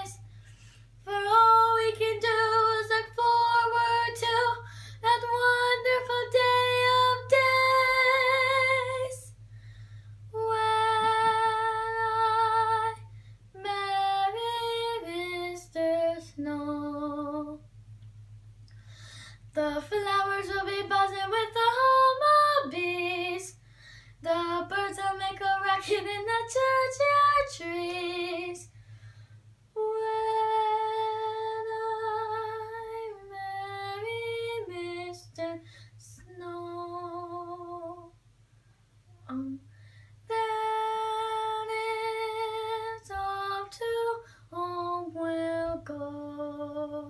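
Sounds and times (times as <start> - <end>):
girl singing unaccompanied: 0.0 - 0.3, 1.0 - 9.4, 10.3 - 17.7, 19.4 - 28.7, 29.7 - 38.2, 39.2 - 47.0
steady low hum: 0.0 - 47.0.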